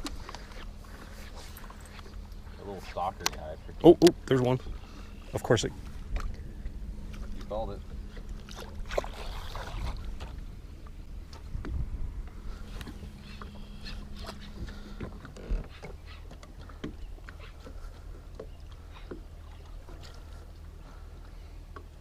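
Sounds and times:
steady low hum: 0.0 - 22.0
water swishing against boat: 0.0 - 22.0.

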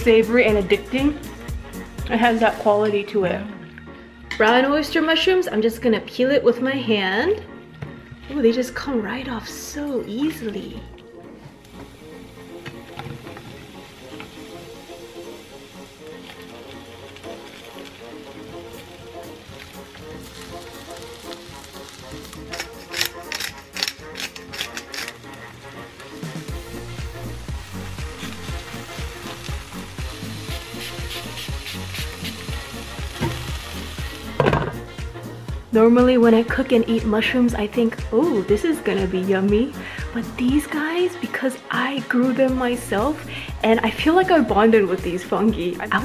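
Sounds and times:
background music with beat: 0.0 - 4.4, 10.3 - 46.0
food sizzling in a frying pan: 11.7 - 23.8, 24.5 - 35.2.

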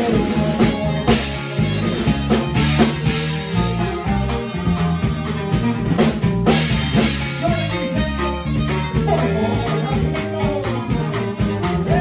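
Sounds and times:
accordion melody: 0.0 - 12.0
drum kit steady beat: 0.0 - 12.0
guitar and bass: 0.0 - 12.0
saxophone melody: 0.0 - 12.0.

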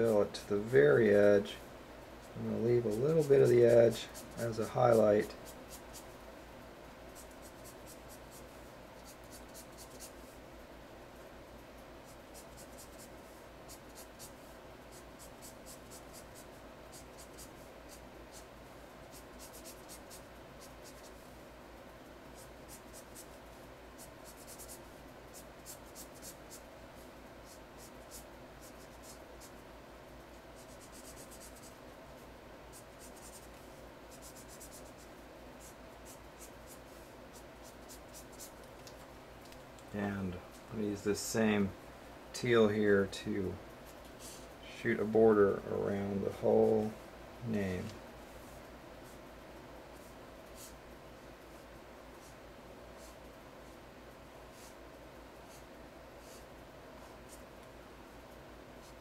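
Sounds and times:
marker scratching on paper: 2.2 - 6.1, 7.1 - 10.3, 12.0 - 18.5, 19.1 - 21.3, 22.3 - 29.6, 30.3 - 31.8, 32.7 - 38.7, 50.0 - 50.8, 51.5 - 53.8, 54.5 - 54.8, 55.4 - 57.5, 58.8 - 59.0.

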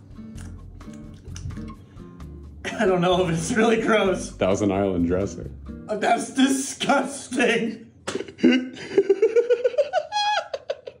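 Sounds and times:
man laughing: 8.1 - 11.0.

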